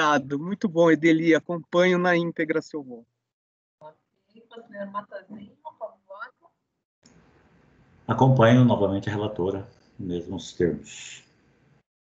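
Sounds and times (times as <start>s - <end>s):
person speaking: 0.0s - 3.0s, 8.1s - 11.2s
faint microphone hiss: 7.1s - 11.4s.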